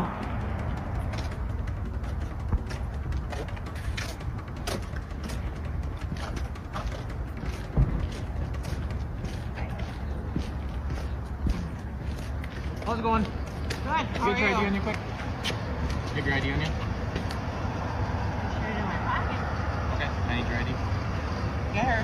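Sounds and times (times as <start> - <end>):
low wind rumble: 0.0 - 16.3
footsteps on pavement: 0.0 - 19.9.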